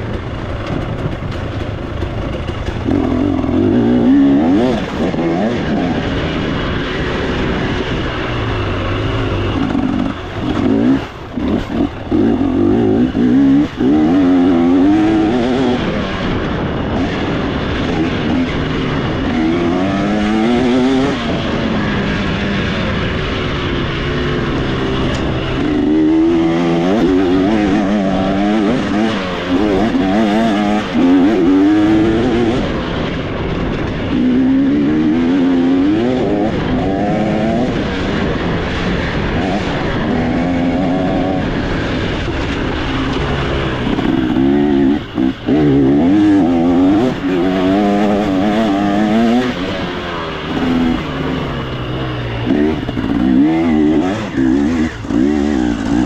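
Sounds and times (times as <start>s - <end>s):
motorcycle engine revving: 0.0s - 56.0s.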